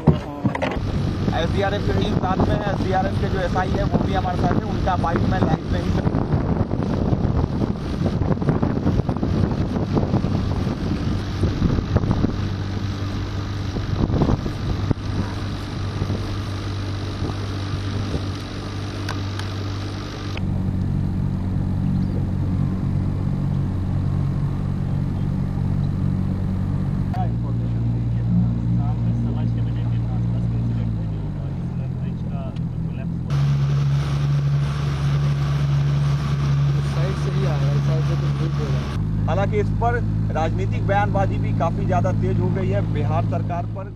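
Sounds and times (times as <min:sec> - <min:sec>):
boat engine humming: 0:00.0 - 0:43.9.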